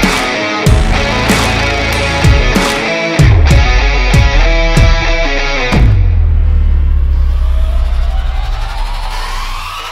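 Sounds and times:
deep bass rumble: 0:00.7 - 0:09.0.

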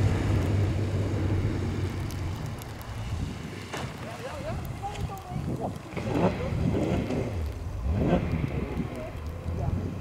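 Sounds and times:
people's voices: 0:03.9 - 0:10.0
rally car engine revving: 0:05.8 - 0:10.0.

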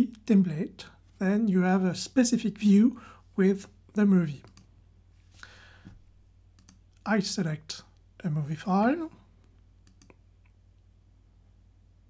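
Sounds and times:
low steady hum: 0:00.0 - 0:12.0
computer mouse clicks: 0:04.4 - 0:04.7, 0:06.5 - 0:07.0, 0:09.4 - 0:10.6.

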